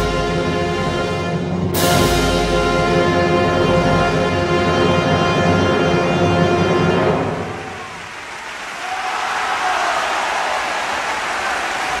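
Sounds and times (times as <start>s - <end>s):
orchestral music: 0.0s - 8.0s
audience applause: 7.3s - 12.0s.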